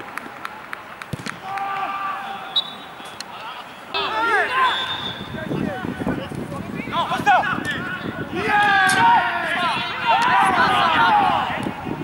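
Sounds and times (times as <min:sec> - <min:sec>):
ball thump: 0:01.1 - 0:01.4
drawn-out shout: 0:01.4 - 0:02.6, 0:03.5 - 0:05.2, 0:07.0 - 0:11.9
players calling out: 0:01.4 - 0:06.1.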